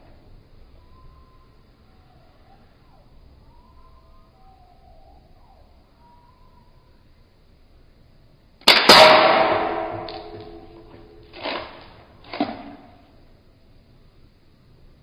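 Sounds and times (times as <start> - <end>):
metallic ringing: 8.9 - 11.3.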